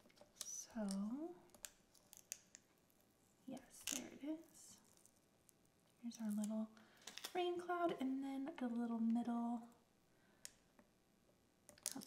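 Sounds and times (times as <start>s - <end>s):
vinyl peeling clicks and crackles: 0.0s - 2.7s, 11.7s - 12.0s.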